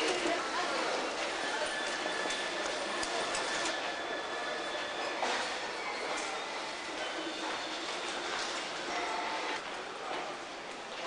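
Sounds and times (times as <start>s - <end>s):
railway station ambience: 0.0s - 11.0s.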